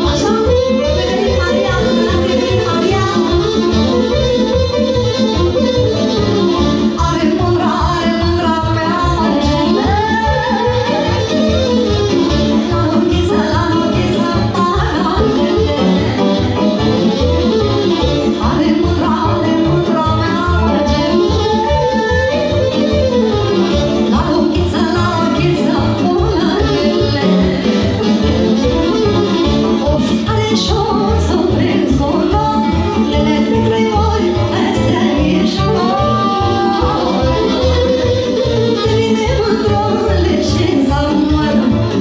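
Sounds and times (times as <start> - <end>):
woman singing into microphone: 0.0 - 4.2, 6.8 - 16.4, 17.9 - 42.0
accordion: 0.0 - 42.0
folk dance music over loudspeakers: 0.0 - 42.0.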